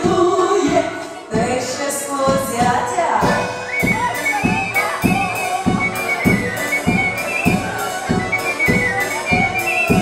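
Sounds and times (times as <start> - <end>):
accordion: 0.0 - 10.0
bass drum and cymbal beat: 2.3 - 10.0
high melody line: 3.2 - 10.0.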